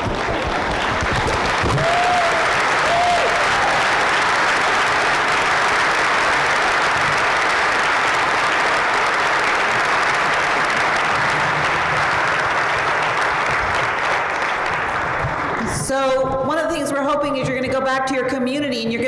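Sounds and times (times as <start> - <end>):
crowd calling out: 0.0 - 12.8
audience applauding: 0.0 - 15.9.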